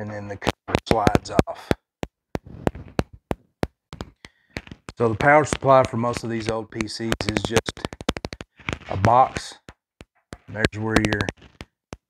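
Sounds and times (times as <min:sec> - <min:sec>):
sheet-metal cover tapping and clicking: 0:02.0 - 0:12.0.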